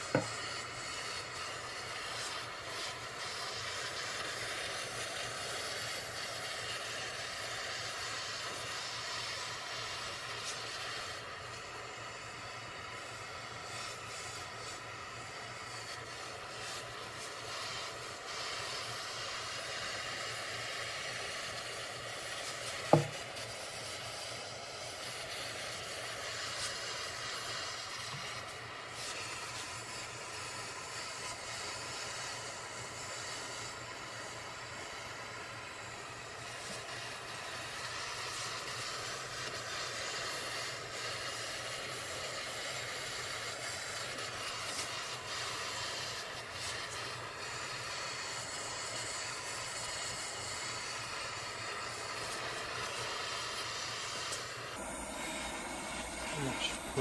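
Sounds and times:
gas torch hissing: 0:00.0 - 0:57.0
sharp knock: 0:22.9 - 0:23.2.

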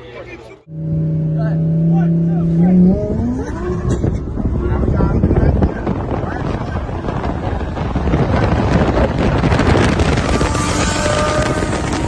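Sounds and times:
sports car engine accelerating: 0:00.6 - 0:12.0
wind and road rush: 0:00.6 - 0:12.0.

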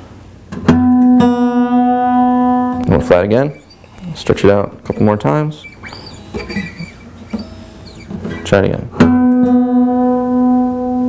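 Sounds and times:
guitar string ringing: 0:00.7 - 0:11.0
guitar strings scraping: 0:00.8 - 0:10.7.

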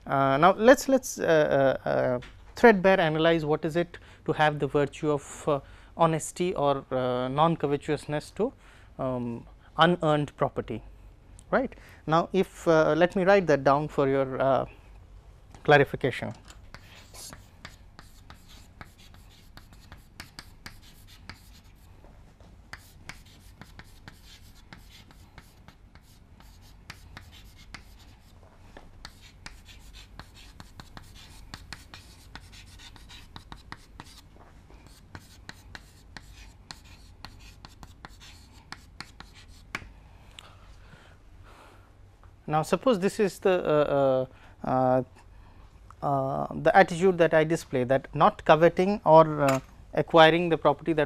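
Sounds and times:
chalk writing on chalkboard: 0:16.7 - 0:21.9, 0:22.7 - 0:28.4, 0:29.0 - 0:39.9.

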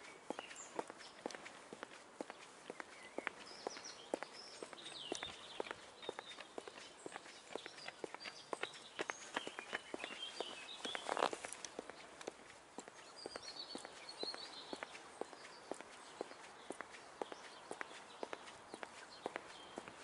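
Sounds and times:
birds chirping: 0:00.0 - 0:20.0
footsteps on brick paving: 0:00.0 - 0:20.0.

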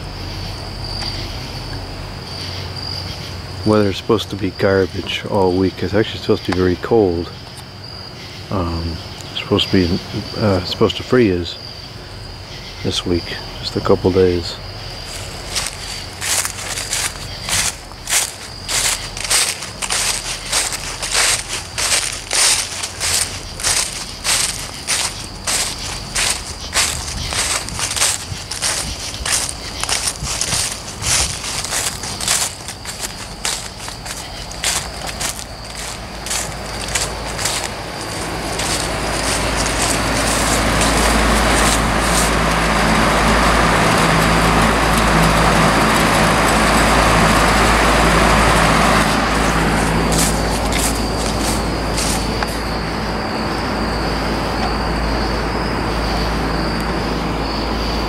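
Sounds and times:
window fan running: 0:00.0 - 0:58.0
footsteps crunching dry leaves: 0:12.6 - 0:54.2.

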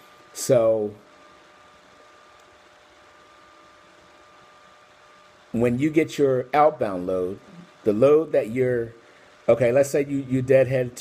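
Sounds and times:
low hiss: 0:00.0 - 0:11.0
thin high hum: 0:00.0 - 0:11.0.

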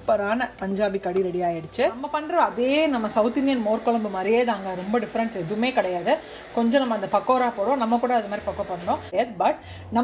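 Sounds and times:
steady background hiss: 0:00.0 - 0:09.2
woman talking: 0:00.0 - 0:10.0.

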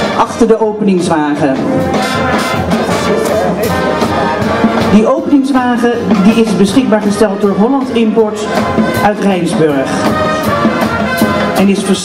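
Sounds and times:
brass instruments playing tune: 0:00.0 - 0:12.0
marching drum beats: 0:00.0 - 0:12.0.

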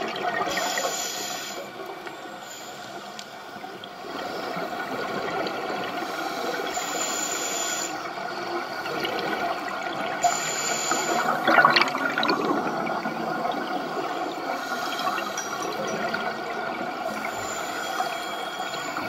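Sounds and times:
scuba regulator breathing: 0:00.5 - 0:05.0, 0:06.0 - 0:09.0, 0:10.2 - 0:11.4, 0:14.0 - 0:15.8, 0:17.0 - 0:19.0
gurgling exhaled bubbles: 0:11.1 - 0:17.3.

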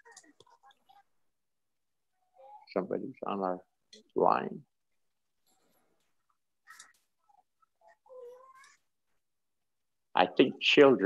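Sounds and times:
faint high-pitched cry: 0:06.6 - 0:09.0.

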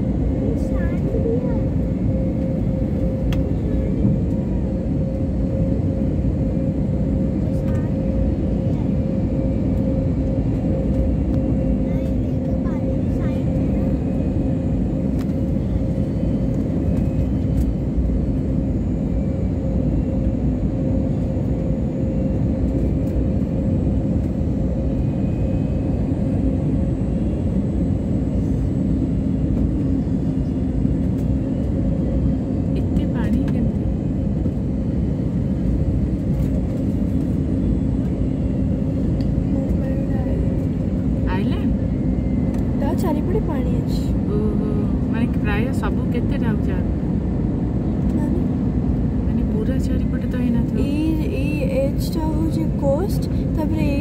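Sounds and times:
airliner cabin engine drone: 0:00.0 - 0:54.0.

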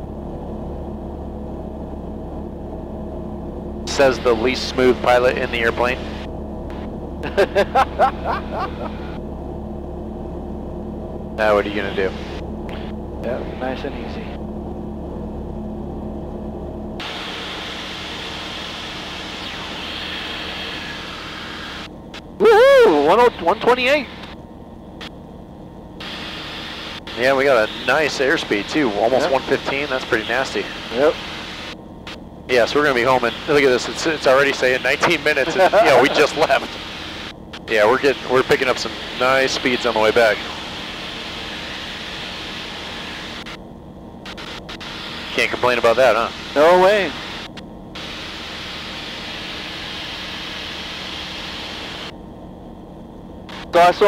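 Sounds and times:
airplane engine drone: 0:00.0 - 0:54.0
headset hiss: 0:17.0 - 0:21.9, 0:33.2 - 0:43.6, 0:44.3 - 0:52.1.

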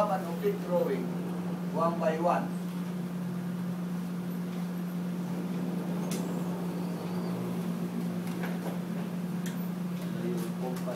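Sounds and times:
low room hum: 0:00.0 - 0:10.9.

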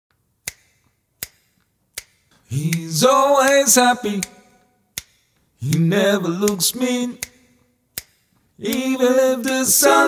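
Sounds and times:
finger snaps: 0:00.4 - 0:09.8.

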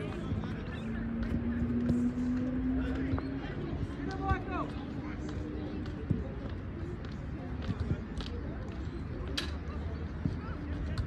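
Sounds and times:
voices: 0:00.0 - 0:11.0
soccer ball dribbled on turf: 0:00.2 - 0:04.8, 0:05.4 - 0:08.8.

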